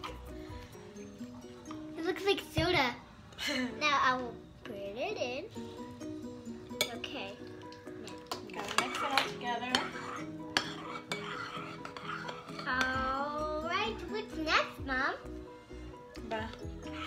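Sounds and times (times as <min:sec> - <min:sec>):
background music: 0:00.0 - 0:17.0
spoon scraping a plate: 0:08.2 - 0:13.0, 0:16.6 - 0:17.0.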